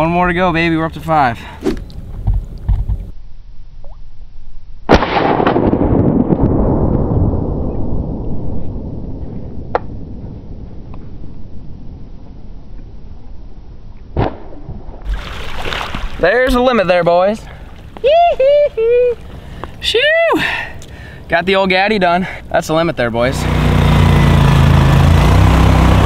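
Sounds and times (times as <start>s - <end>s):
shotgun shot: 4.9s - 6.8s, 14.2s - 15.1s
sharp cracks: 4.9s - 10.2s, 14.0s - 18.1s.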